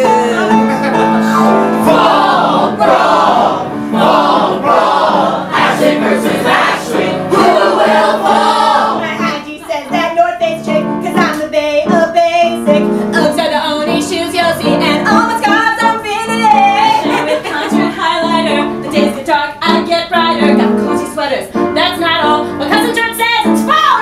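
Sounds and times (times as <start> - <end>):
live instrumental accompaniment: 0.0 - 5.0
performers singing: 1.8 - 9.3.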